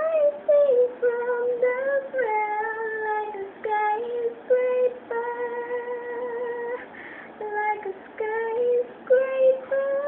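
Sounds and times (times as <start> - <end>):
woman singing: 0.0 - 10.0
singer breathing: 6.8 - 7.4.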